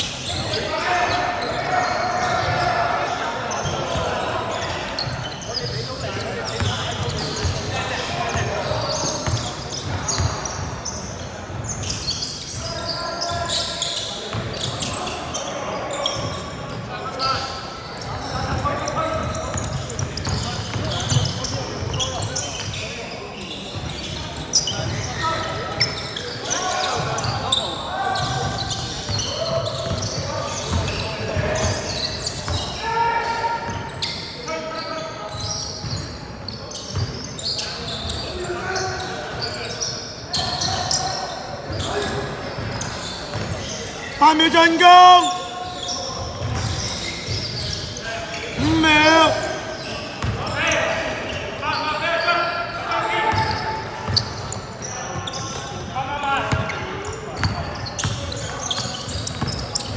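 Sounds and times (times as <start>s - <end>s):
players calling out: 0.2s - 35.7s, 37.0s - 59.9s
basketball bouncing on court: 6.5s - 8.5s, 42.6s - 43.6s, 46.2s - 47.5s, 53.3s - 54.4s, 56.5s - 59.9s.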